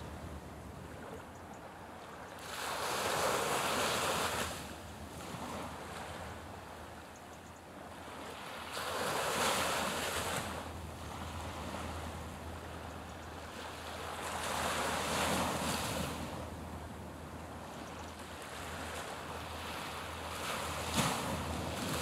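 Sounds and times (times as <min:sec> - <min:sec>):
small waves washing in: 0:02.4 - 0:06.3, 0:18.4 - 0:22.0.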